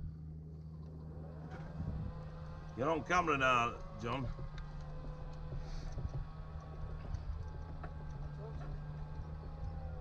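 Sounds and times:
low rumble of cart: 0:00.0 - 0:10.0.

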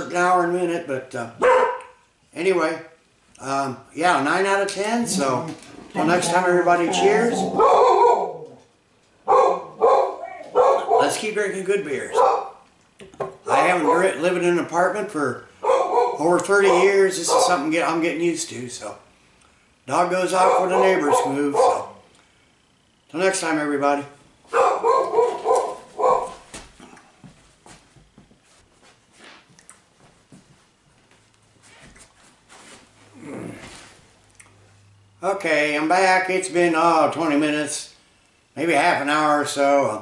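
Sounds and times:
dog barking: 0:01.4 - 0:02.0, 0:06.8 - 0:08.6, 0:09.2 - 0:11.2, 0:12.1 - 0:12.6, 0:13.5 - 0:14.2, 0:15.6 - 0:17.6, 0:20.3 - 0:22.0, 0:24.5 - 0:26.4
faint knocks and shuffles: 0:24.4 - 0:34.9.

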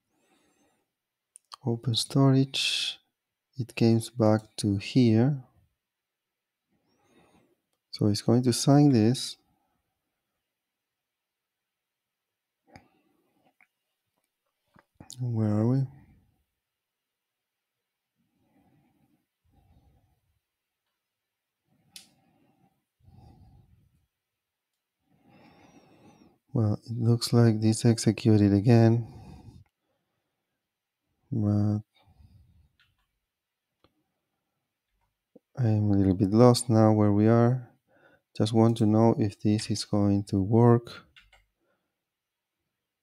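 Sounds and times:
person speaking: 0:01.4 - 0:03.0, 0:03.6 - 0:05.5, 0:07.9 - 0:09.4, 0:15.0 - 0:16.0, 0:26.5 - 0:29.3, 0:31.3 - 0:31.9, 0:35.4 - 0:37.7, 0:38.4 - 0:41.3.

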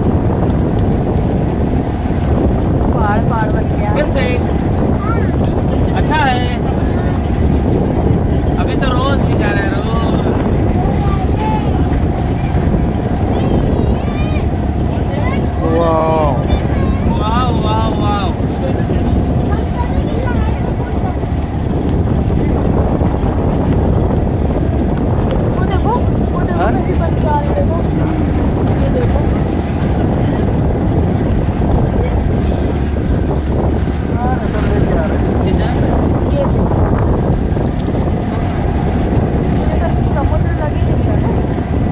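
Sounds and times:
motorboat engine running: 0:00.0 - 0:41.9
wind on microphone: 0:00.0 - 0:41.9
indistinct voices talking: 0:02.7 - 0:41.9.

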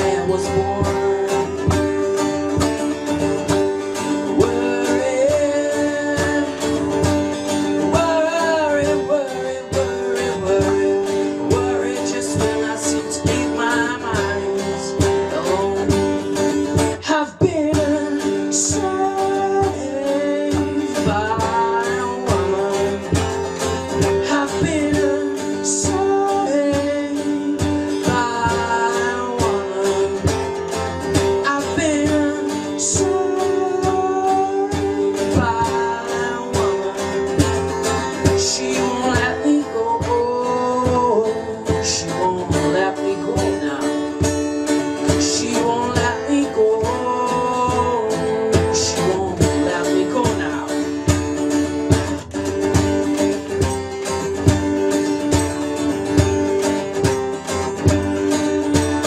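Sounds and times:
acoustic guitar strumming: 0:00.0 - 0:59.0
man singing: 0:00.0 - 0:59.0.

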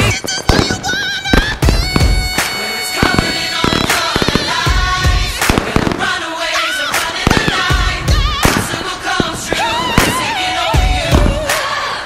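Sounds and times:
fireworks bursting: 0:00.0 - 0:12.0
music track with melody: 0:00.0 - 0:12.0.

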